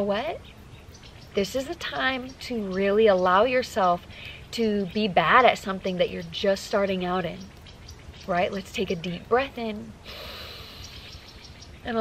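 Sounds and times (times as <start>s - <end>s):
woman inhaling deeply: 10.0s - 11.2s.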